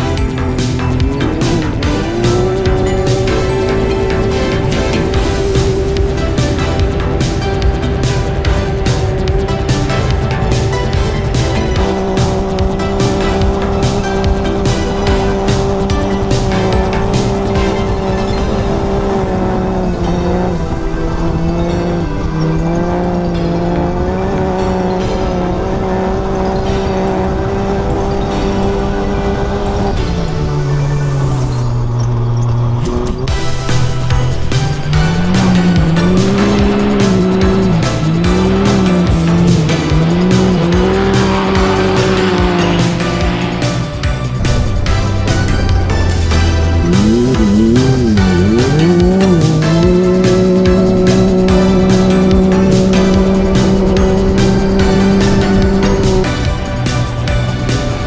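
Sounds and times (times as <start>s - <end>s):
engine at full throttle: 0.0s - 58.0s.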